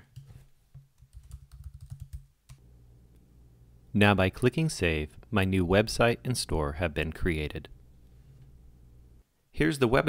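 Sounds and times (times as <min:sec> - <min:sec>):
faint low hum: 0:00.0 - 0:10.0
typing on a keyboard: 0:01.0 - 0:02.6.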